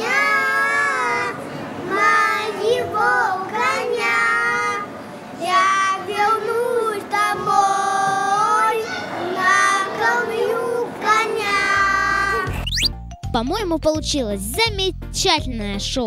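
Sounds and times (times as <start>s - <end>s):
children singing together: 0.0s - 12.5s.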